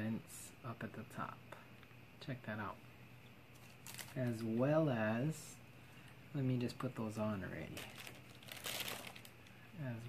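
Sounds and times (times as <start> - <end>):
packaging crinkle: 3.5 - 4.4, 7.6 - 9.6.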